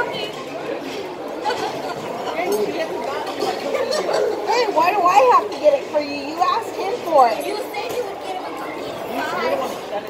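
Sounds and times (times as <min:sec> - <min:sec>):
indistinct chatter of many voices: 0:00.0 - 0:10.0.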